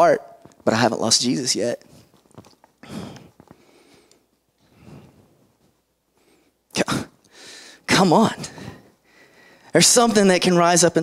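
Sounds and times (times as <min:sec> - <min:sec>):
man breathing into microphone: 0:02.8 - 0:05.5, 0:07.3 - 0:09.7.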